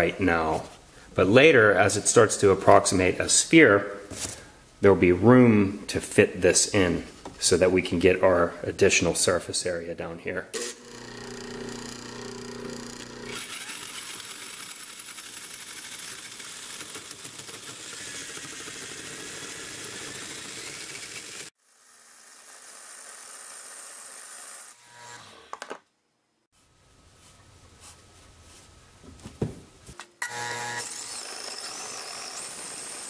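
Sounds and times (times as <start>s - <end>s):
electric motor humming: 10.6s - 21.5s, 30.2s - 32.0s
hole saw grinding into wood: 10.6s - 21.5s.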